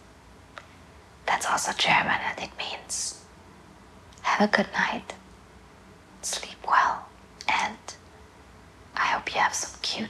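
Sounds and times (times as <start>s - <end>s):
woman whispering: 1.3s - 3.2s, 4.2s - 5.2s, 6.2s - 8.0s, 9.0s - 10.0s.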